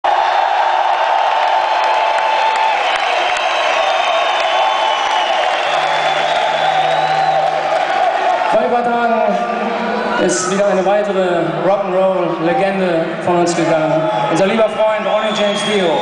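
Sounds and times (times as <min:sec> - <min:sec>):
crowd cheering and whooping: 0:00.0 - 0:10.9, 0:13.9 - 0:16.0.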